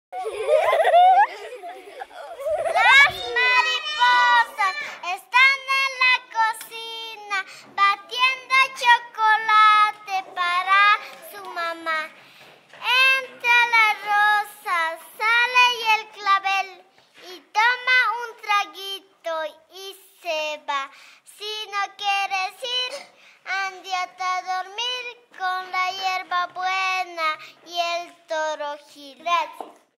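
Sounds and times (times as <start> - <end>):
child singing: 1.6 - 12.2, 12.8 - 29.8.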